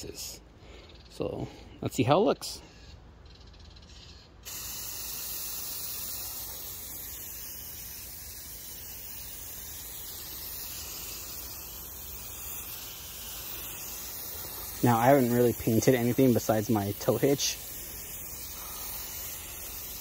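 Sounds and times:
aerosol spray can hissing: 4.4s - 20.0s.

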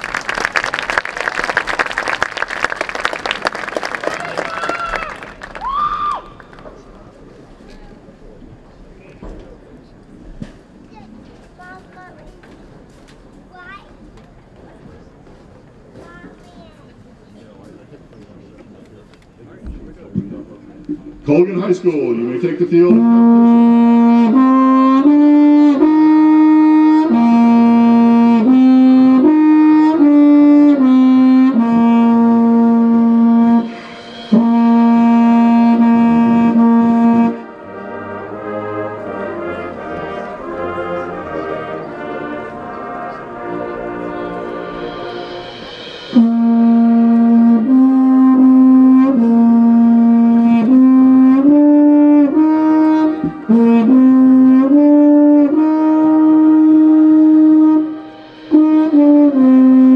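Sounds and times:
brass band playing chords: 19.7s - 59.9s.

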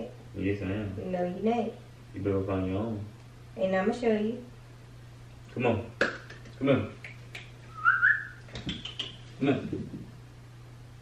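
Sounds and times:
short rising whistle: 7.7s - 8.4s.

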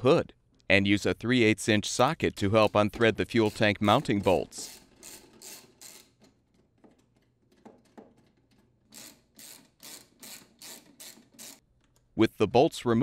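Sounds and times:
socket ratchet clicking: 4.7s - 6.4s, 8.9s - 12.1s.

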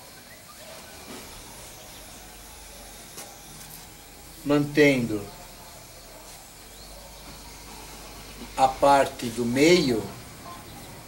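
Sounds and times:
low steady background hiss: 0.0s - 11.0s.

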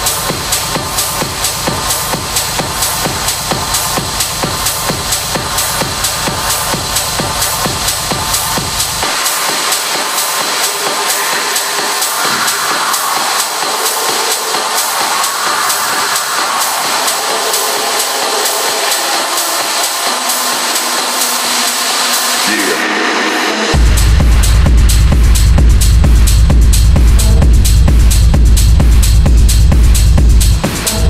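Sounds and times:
dark techno music: 0.0s - 31.0s.

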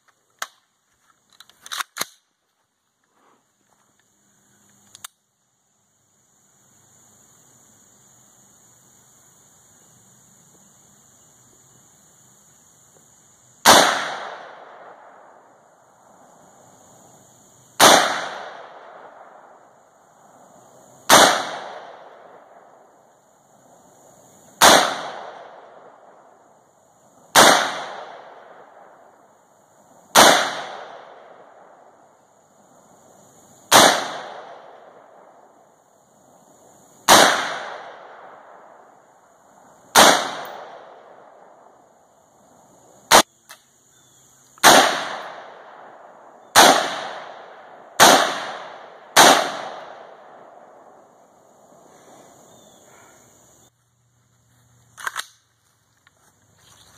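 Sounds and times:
rifle shots echoing: 13.6s - 15.6s, 17.8s - 19.7s, 21.1s - 22.8s, 24.6s - 26.3s, 27.3s - 29.1s, 30.1s - 31.9s, 33.7s - 35.4s, 37.0s - 38.9s, 39.9s - 41.7s, 43.1s - 43.3s, 44.6s - 51.0s.

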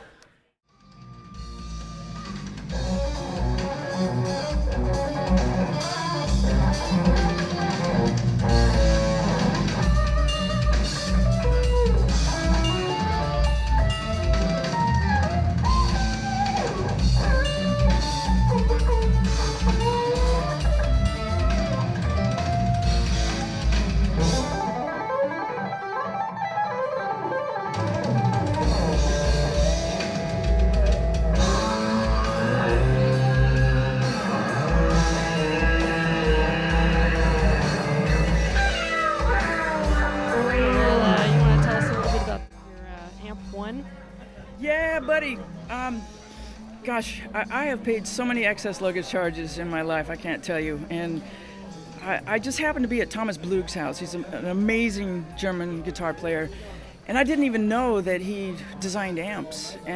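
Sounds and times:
electric guitar lead melody: 1.3s - 59.9s
drum beat: 28.0s - 43.7s.

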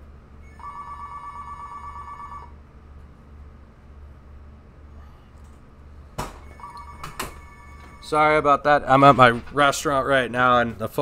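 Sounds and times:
steady low hum: 0.0s - 11.0s
warbling electronic telephone ring: 0.4s - 2.6s, 6.4s - 8.2s.

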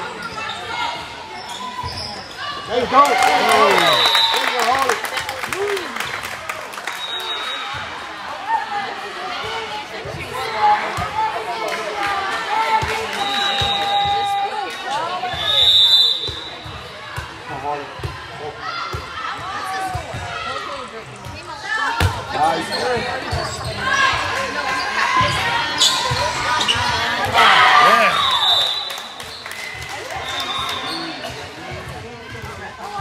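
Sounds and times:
chatter of players and spectators: 0.0s - 33.0s.

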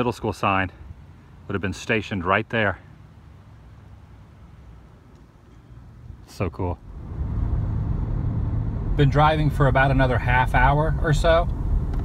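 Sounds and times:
van engine and tyre rumble: 0.0s - 12.0s.

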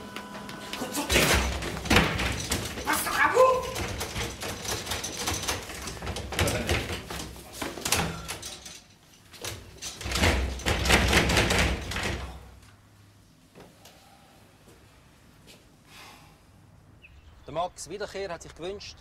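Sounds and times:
door squeak: 0.8s - 4.9s
door rattling and knocking: 1.1s - 12.6s.

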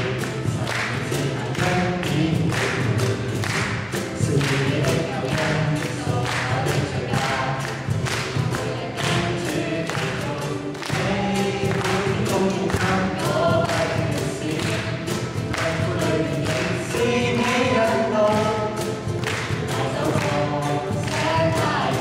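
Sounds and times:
acoustic guitars: 0.0s - 22.0s
cajon beat: 0.0s - 22.0s
group singing worship song: 0.0s - 22.0s.

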